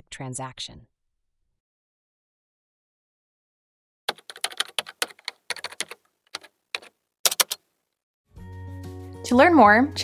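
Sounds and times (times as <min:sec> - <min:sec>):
typing on computer keyboard: 0:04.1 - 0:07.6.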